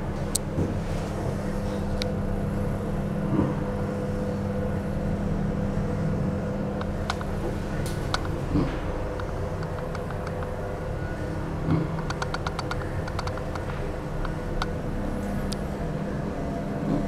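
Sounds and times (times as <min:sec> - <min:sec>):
elevator hum: 0:00.0 - 0:17.0.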